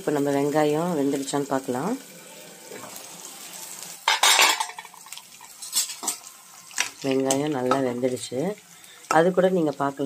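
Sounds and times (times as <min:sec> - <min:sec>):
onions sizzling in oil: 0:00.0 - 0:10.0
metal clattering on pan: 0:04.0 - 0:06.2.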